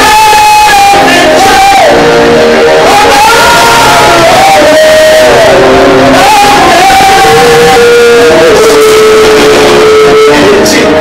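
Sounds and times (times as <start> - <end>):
congregation shouting and singing: 0.0 - 11.0
men singing into microphones: 0.0 - 11.0.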